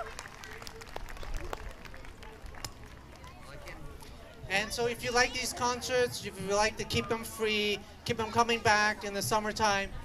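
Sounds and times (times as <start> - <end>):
scattered hand claps: 0.0 - 3.1.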